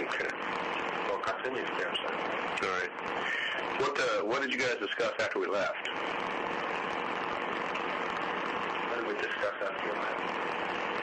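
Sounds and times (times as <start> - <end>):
static hiss: 0.0 - 11.0.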